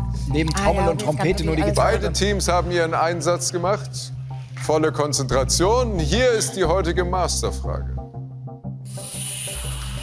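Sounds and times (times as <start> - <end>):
quiz-show background music: 0.0 - 10.0.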